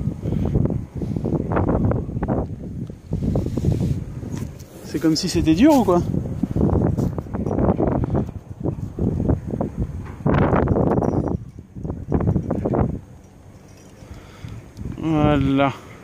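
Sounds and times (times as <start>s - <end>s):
rope and clothing scraping microphone: 0.6s - 13.1s.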